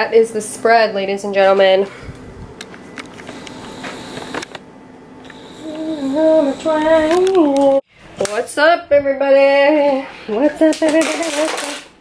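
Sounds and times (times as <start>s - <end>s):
woman singing: 5.6s - 11.8s.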